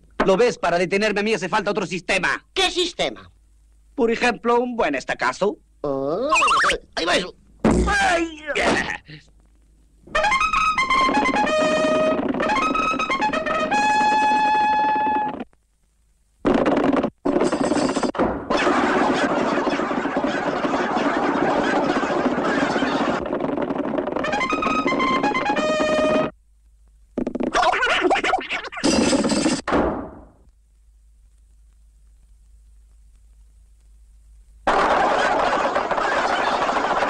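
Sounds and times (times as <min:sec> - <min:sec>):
brass fanfare: 0:10.2 - 0:15.3, 0:24.2 - 0:26.3
dense noisy sound effect: 0:16.4 - 0:26.3.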